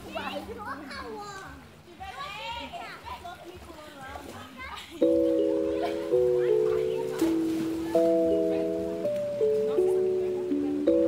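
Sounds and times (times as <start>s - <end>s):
electronic background music: 5.0s - 11.0s.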